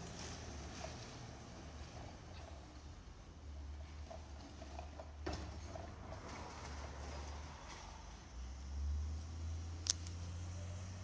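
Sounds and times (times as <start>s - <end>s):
truck passing: 0.0s - 11.0s.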